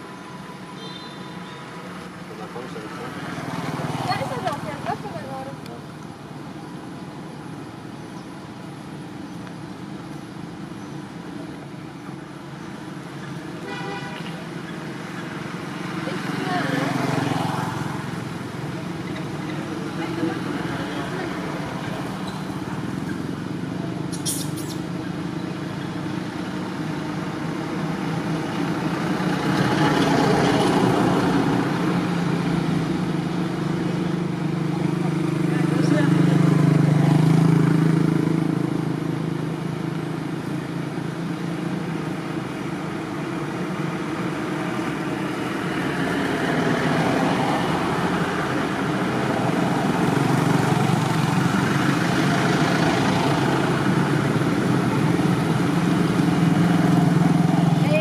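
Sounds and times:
passing vehicles rumbling: 0.0s - 58.0s.

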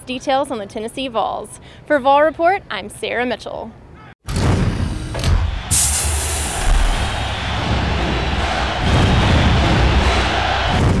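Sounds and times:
loud music: 5.6s - 11.0s.

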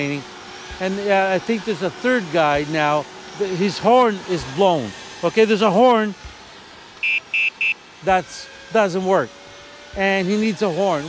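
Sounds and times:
electronic scooter horn beeps: 7.0s - 7.8s.

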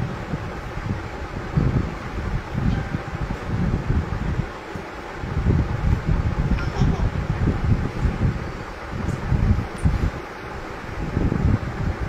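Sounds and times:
air buffeting microphone: 0.0s - 12.0s.

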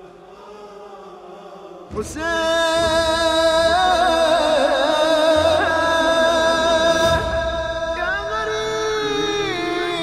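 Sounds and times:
man reciting loudly: 0.0s - 10.0s
wordless chanted vocal drone: 0.0s - 10.0s.

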